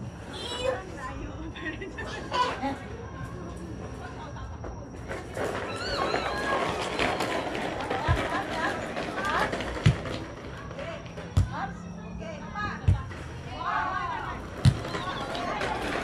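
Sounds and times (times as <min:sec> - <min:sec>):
people calling out and chattering: 0:00.0 - 0:16.0.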